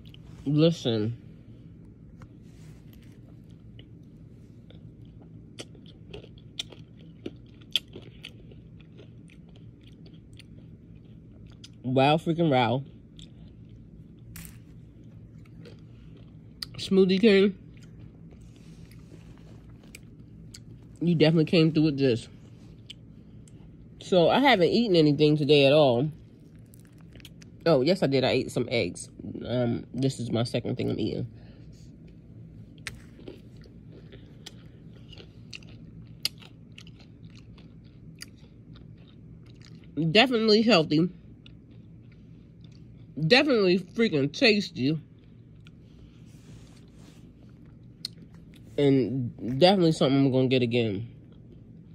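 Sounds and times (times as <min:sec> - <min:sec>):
chewing crunchy food: 0:00.0 - 0:00.4, 0:02.2 - 0:21.0, 0:26.0 - 0:27.7, 0:31.7 - 0:40.0, 0:41.1 - 0:43.2, 0:45.0 - 0:48.8, 0:51.1 - 0:51.9.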